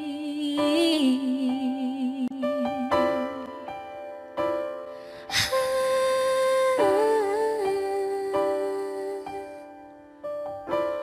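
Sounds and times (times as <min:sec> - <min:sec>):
woman singing love ballad: 0:00.0 - 0:03.7, 0:05.1 - 0:09.8.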